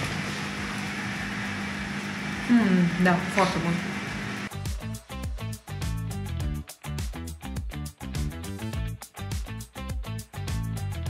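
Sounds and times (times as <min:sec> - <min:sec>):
low mechanical hum: 0:00.0 - 0:04.5.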